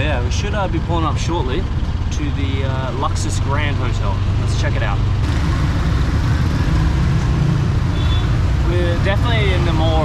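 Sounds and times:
auto-rickshaw engine rumbling: 0:00.0 - 0:10.0
street traffic: 0:00.0 - 0:10.0.

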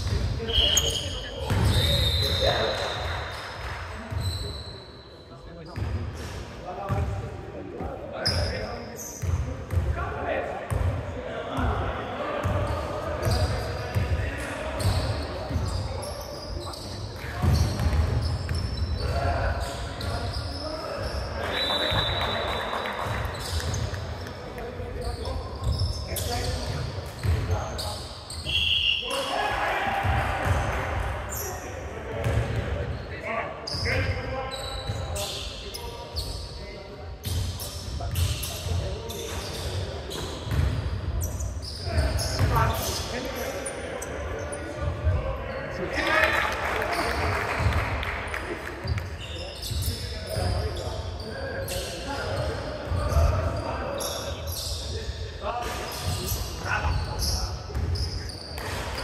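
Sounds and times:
players' voices: 0:00.0 - 0:59.0
high shoe squeaks: 0:00.4 - 0:05.9, 0:08.2 - 0:09.4, 0:14.7 - 0:29.4, 0:32.9 - 0:44.9, 0:48.8 - 0:59.0.

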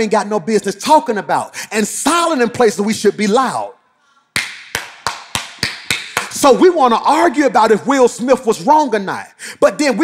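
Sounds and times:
man clapping hands: 0:04.3 - 0:06.4.

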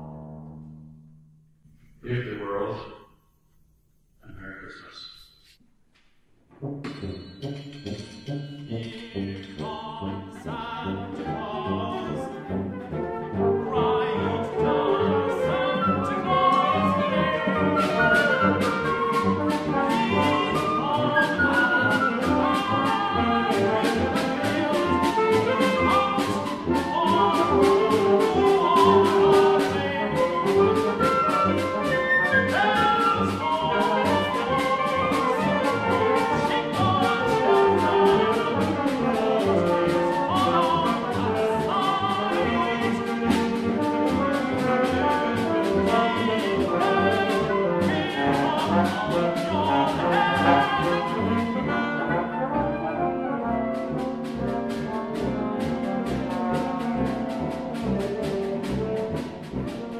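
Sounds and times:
brass: 0:06.5 - 0:59.9
chamber ensemble playing: 0:06.6 - 0:59.9.

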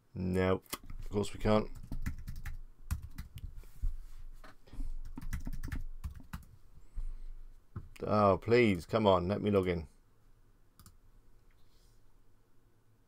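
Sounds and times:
typing on computer keyboard: 0:01.7 - 0:03.4, 0:05.0 - 0:06.5, 0:10.8 - 0:11.0.

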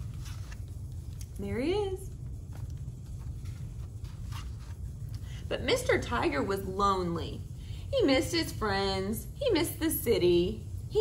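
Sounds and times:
book page turning: 0:00.0 - 0:01.3, 0:02.4 - 0:05.3.

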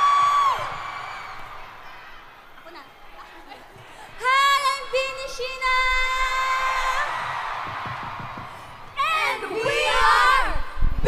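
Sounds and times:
crowd cheering: 0:00.0 - 0:10.9.

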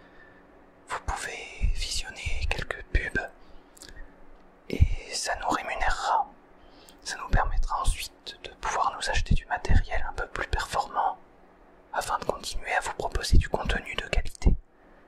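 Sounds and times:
person whispering: 0:00.9 - 0:04.0, 0:04.7 - 0:06.4, 0:07.0 - 0:11.2, 0:12.0 - 0:14.6.

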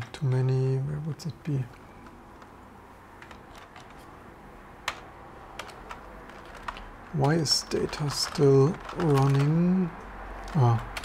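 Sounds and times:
typing on computer keyboard: 0:03.2 - 0:04.1, 0:04.8 - 0:11.0.

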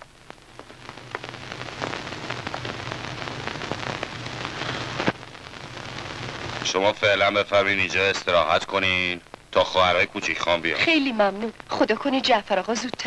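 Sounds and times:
crackling hiss with clicks: 0:00.0 - 0:13.0
steady low hum: 0:00.0 - 0:13.0.

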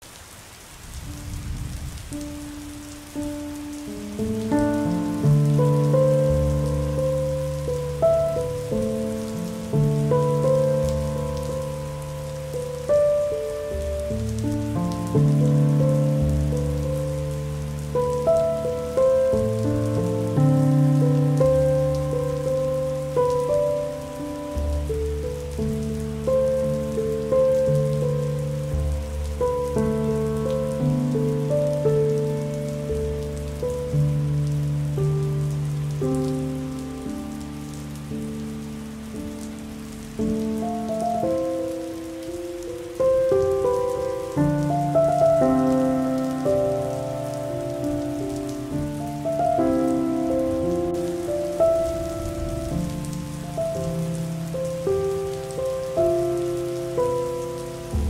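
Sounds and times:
steady rain falling: 0:00.0 - 0:58.0
slow soft melodic music: 0:00.2 - 0:58.0.

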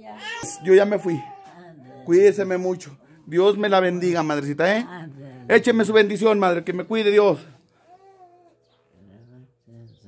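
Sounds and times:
elderly woman murmuring: 0:00.0 - 0:03.3, 0:04.8 - 0:06.0, 0:07.9 - 0:10.0.

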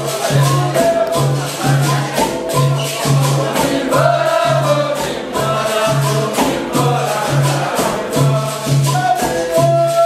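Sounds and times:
group singing in chorus: 0:00.0 - 0:10.0
jingling percussion: 0:00.0 - 0:10.0.

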